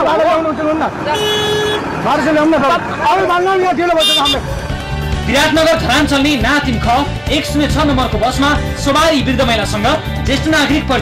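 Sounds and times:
vehicle horn honk: 0:01.1 - 0:02.0, 0:03.9 - 0:04.5.

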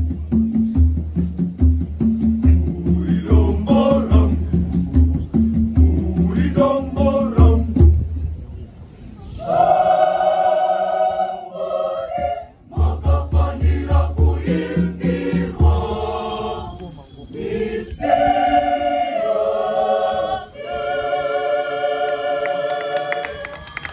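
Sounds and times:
low beats: 0:00.0 - 0:22.7
mixed choir singing: 0:02.5 - 0:04.6, 0:05.7 - 0:07.8, 0:09.2 - 0:23.9.

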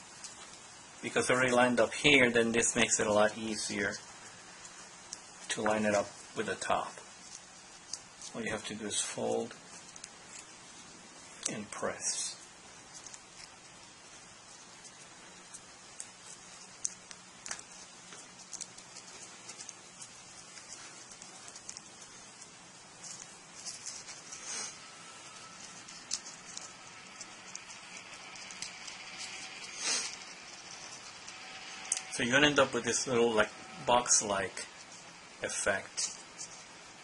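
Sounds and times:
paper being folded: 0:00.1 - 0:37.0.

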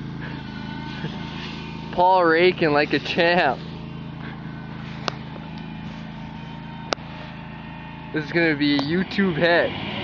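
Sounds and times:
leaf blower: 0:00.0 - 0:10.0
tractor engine running: 0:00.0 - 0:10.0.

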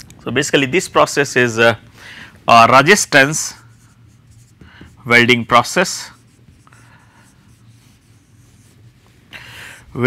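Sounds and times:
marker pen writing on whiteboard: 0:03.0 - 0:09.2.

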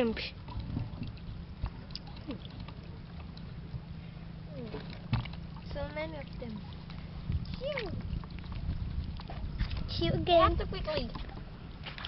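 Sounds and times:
wet clicks and small splashes: 0:00.1 - 0:03.6, 0:04.6 - 0:10.1, 0:10.8 - 0:12.0.

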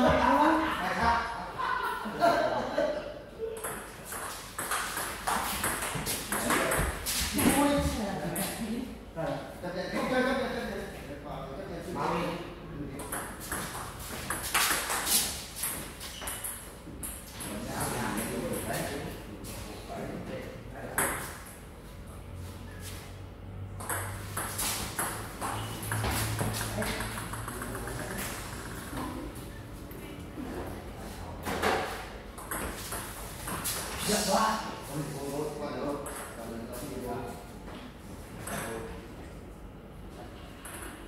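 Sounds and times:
people talking: 0:06.3 - 0:13.2, 0:17.4 - 0:21.2.

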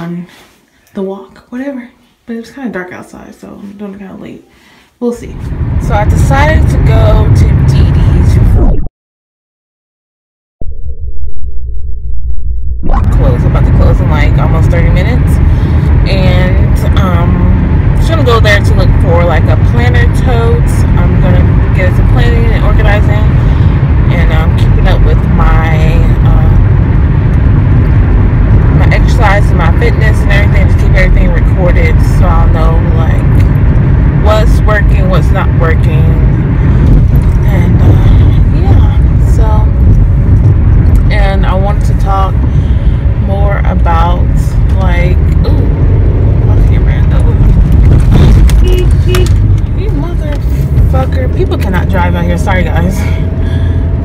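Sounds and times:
car road and engine rumble: 0:05.2 - 0:08.7, 0:12.8 - 0:54.0
person talking: 0:12.8 - 0:15.4, 0:16.1 - 0:23.4, 0:37.4 - 0:39.8, 0:43.2 - 0:47.5, 0:48.2 - 0:53.2.

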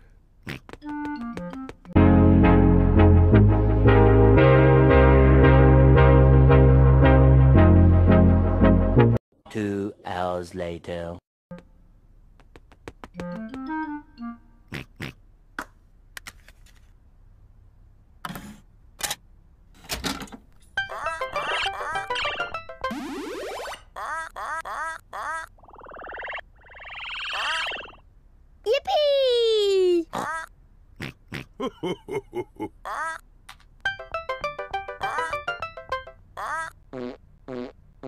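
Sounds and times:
cartoon pig oinking grunts: 0:14.7 - 0:15.2, 0:30.1 - 0:31.8
bright game jingle: 0:33.9 - 0:36.2.

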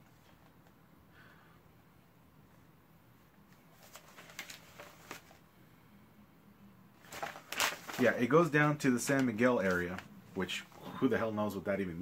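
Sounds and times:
paper rustling: 0:03.5 - 0:05.4, 0:07.0 - 0:10.8.

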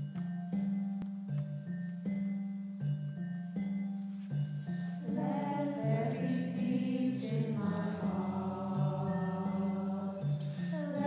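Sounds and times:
choir singing sustained chords: 0:05.0 - 0:11.0.

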